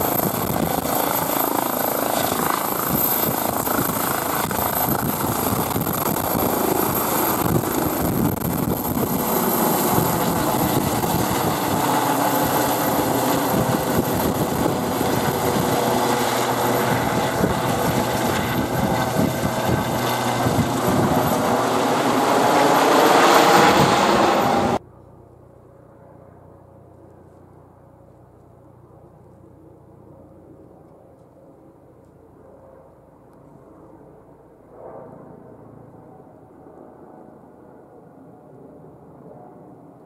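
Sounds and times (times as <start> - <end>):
helicopter rotor and turbine noise: 0.0 - 40.0.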